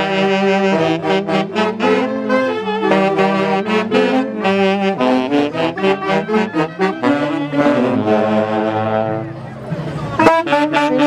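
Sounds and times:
saxophone band playing dance music: 0.0 - 11.0.

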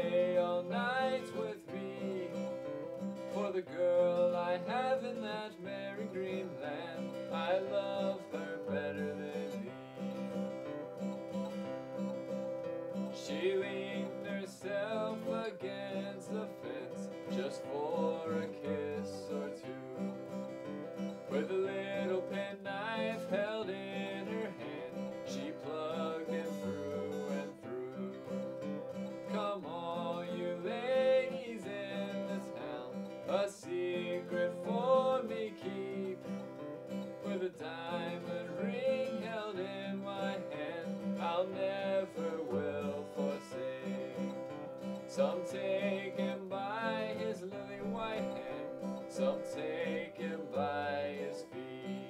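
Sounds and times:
acoustic guitar strummed: 0.0 - 52.0.

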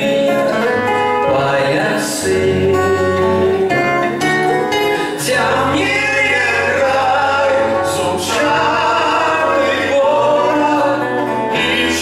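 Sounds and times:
acoustic guitars: 0.0 - 12.0
two men singing: 0.0 - 12.0.

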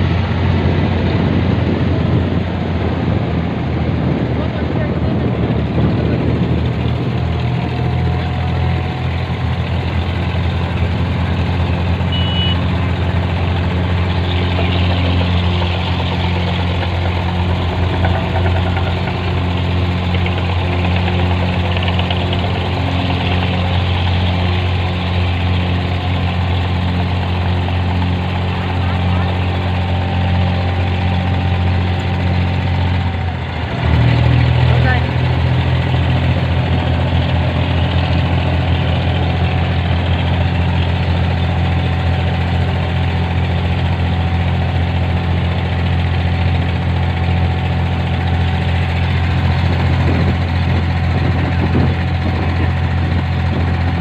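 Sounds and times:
boat diesel engine running: 0.0 - 54.0.

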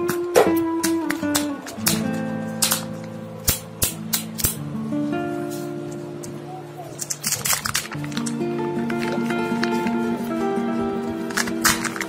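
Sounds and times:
foil seal crinkling: 6.9 - 10.4, 11.1 - 12.0.

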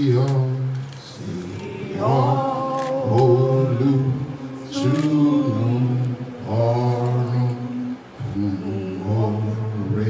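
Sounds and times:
low voice chanting: 0.0 - 10.0.

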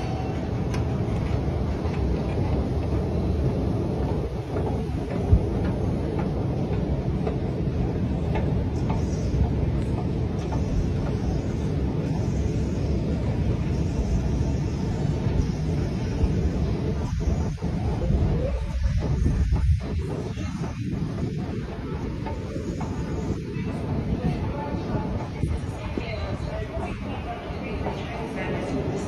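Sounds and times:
low rumble of station machinery: 0.0 - 29.0.

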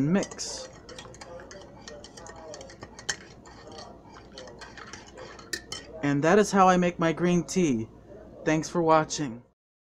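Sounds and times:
spoon clinking in ceramic mug: 0.2 - 6.0.

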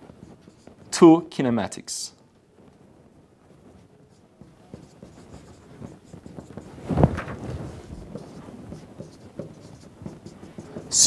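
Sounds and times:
marker writing on whiteboard: 0.0 - 1.1, 3.8 - 11.0.

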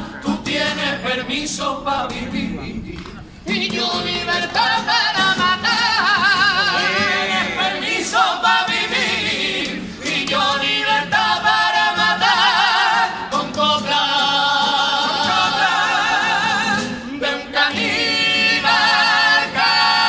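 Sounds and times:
men singing in harmony: 0.0 - 2.6, 3.5 - 20.0
acoustic guitar: 0.0 - 20.0.

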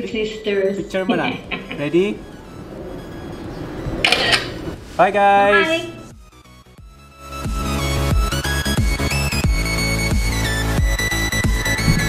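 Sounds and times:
camera shutter click: 4.0 - 4.6
person calling out: 5.4 - 6.0.

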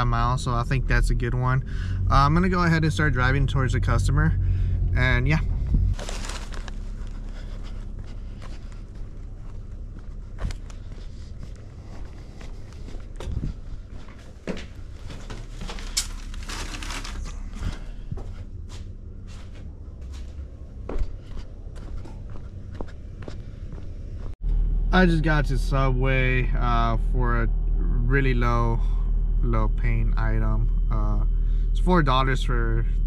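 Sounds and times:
steady low hum: 0.0 - 33.0
short rustles: 5.5 - 20.4
footsteps on concrete: 6.6 - 16.0, 17.6 - 24.4.

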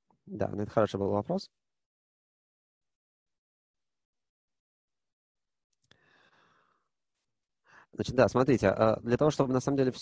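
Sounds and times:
short breath in: 5.9 - 6.9.

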